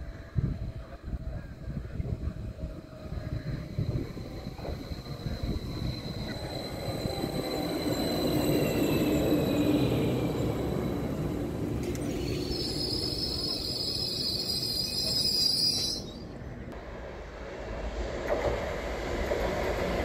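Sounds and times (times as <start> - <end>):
high train whine: 0.0 - 20.0
train wheels rumbling on track: 0.0 - 20.0.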